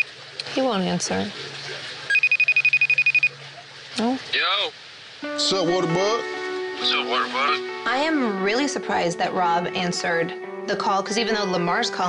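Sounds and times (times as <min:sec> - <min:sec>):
telephone ringing trill: 0:02.1 - 0:03.4.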